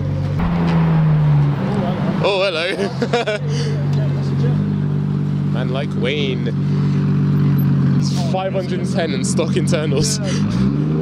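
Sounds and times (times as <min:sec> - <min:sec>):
car engine running: 0:00.0 - 0:11.0.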